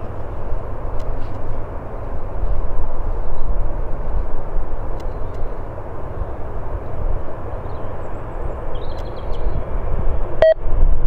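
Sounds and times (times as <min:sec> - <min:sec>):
jet engine rumble: 0:00.0 - 0:11.0
wind on microphone: 0:00.0 - 0:11.0
short electronic beep: 0:10.4 - 0:10.6.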